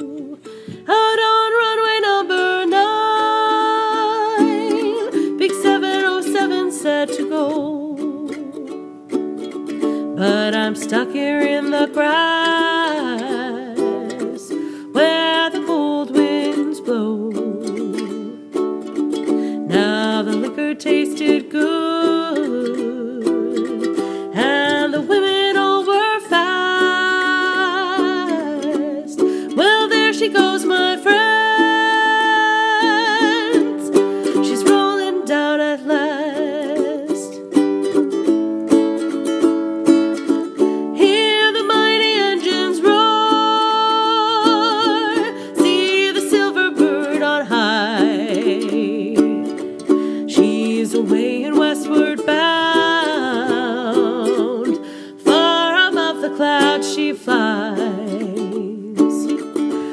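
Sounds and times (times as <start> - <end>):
woman singing with vibrato: 0.0 - 38.0, 39.0 - 59.9
strummed ukulele: 0.0 - 59.9.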